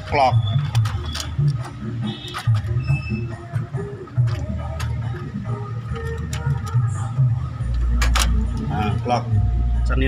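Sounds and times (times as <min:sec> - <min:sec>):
plastic parts clicking and knocking: 0:00.0 - 0:02.9, 0:04.1 - 0:08.7.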